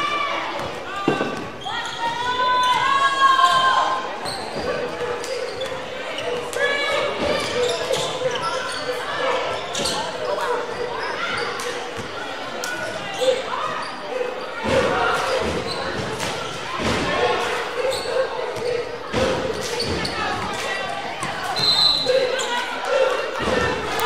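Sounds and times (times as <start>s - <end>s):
crowd chatter and shouts: 0.0s - 24.0s.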